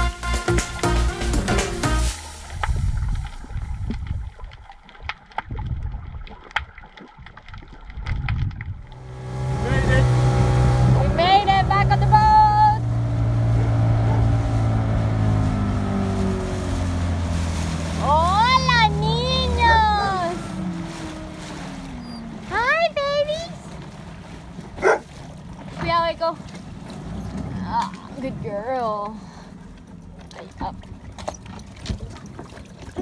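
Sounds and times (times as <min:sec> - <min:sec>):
outboard motor running: 0:00.0 - 0:05.1, 0:08.7 - 0:33.0
underwater rumble: 0:01.4 - 0:33.0
underwater clicks: 0:02.4 - 0:09.1
person calling out: 0:18.0 - 0:20.5.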